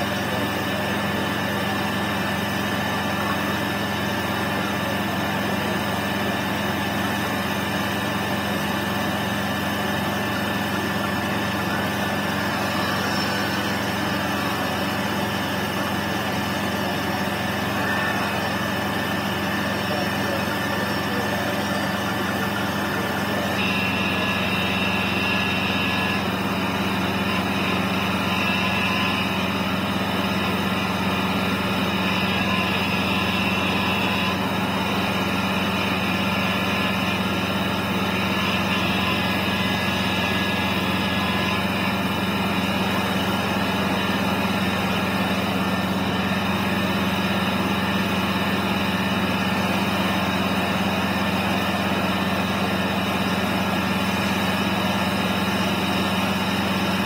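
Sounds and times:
fire truck engine droning: 0.0s - 57.0s.

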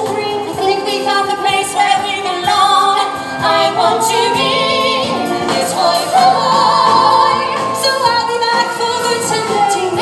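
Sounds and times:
chorus singing with accompaniment: 0.3s - 10.0s.

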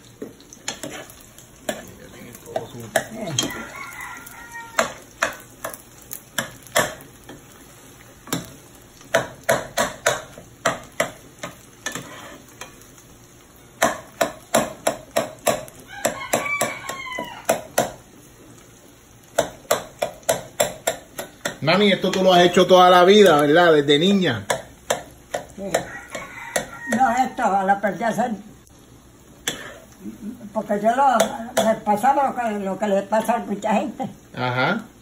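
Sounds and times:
eggs frying in oil: 0.0s - 35.0s
metal spoon scraping frying pan: 0.7s - 2.0s, 11.4s - 12.8s.

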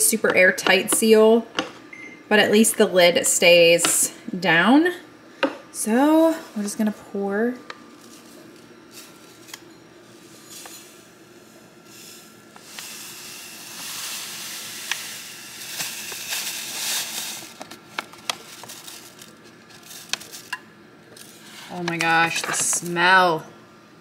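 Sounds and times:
ground coffee pouring hiss: 7.9s - 22.8s
foil bag crinkling: 15.1s - 20.6s.

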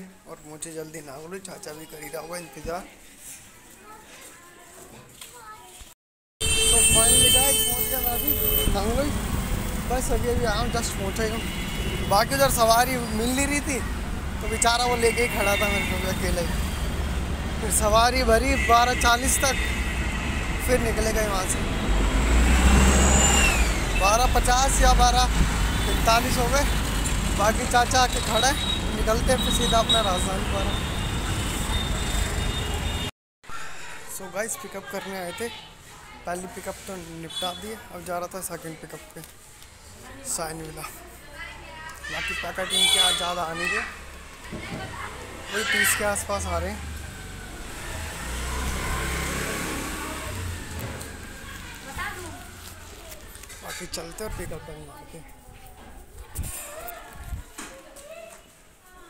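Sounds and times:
road vehicle noise: 6.4s - 57.6s
motor vehicle passing by: 8.6s - 14.4s, 19.7s - 27.9s, 43.9s - 53.6s.

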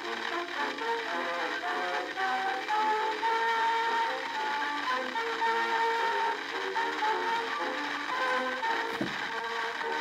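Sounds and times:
phonograph hiss: 0.0s - 10.0s.

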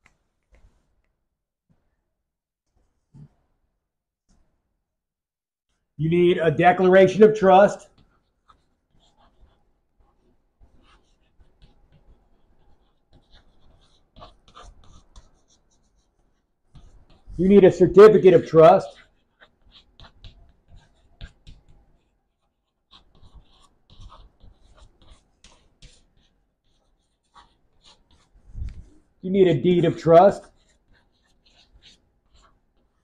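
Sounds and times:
chalk scratching on blackboard: 6.9s - 33.0s.

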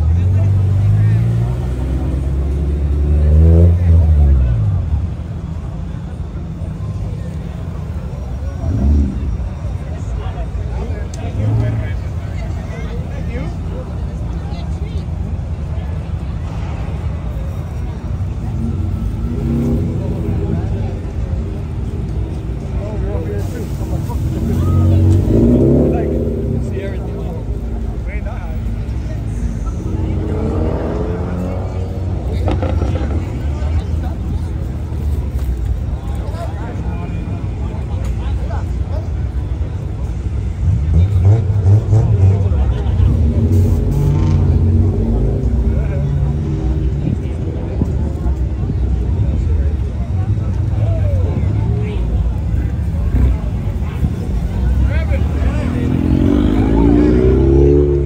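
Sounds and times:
crowd voices: 0.0s - 58.0s
sports car engines revving: 0.0s - 58.0s.

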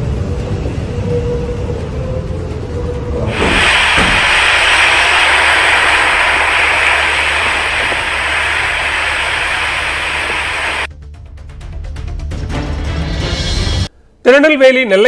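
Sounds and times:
surf breaking against a seawall: 3.3s - 10.9s.

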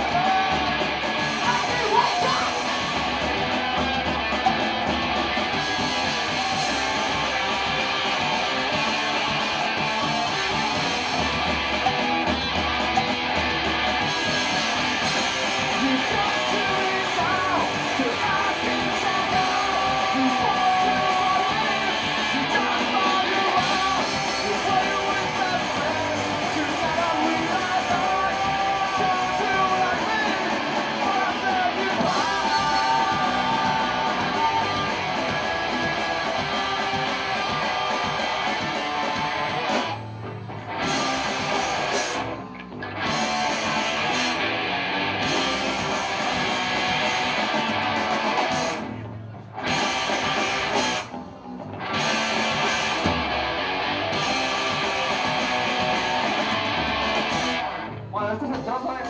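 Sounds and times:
punk rock band playing: 0.0s - 59.0s.

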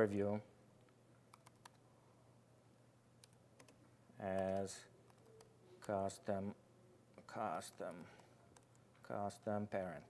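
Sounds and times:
faint computer keyboard keystrokes: 1.3s - 1.8s, 3.2s - 6.0s.

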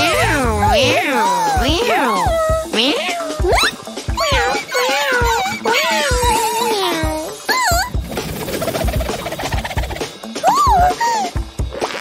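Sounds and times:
cartoon cat meowing: 0.0s - 7.9s
background music: 0.0s - 12.0s.

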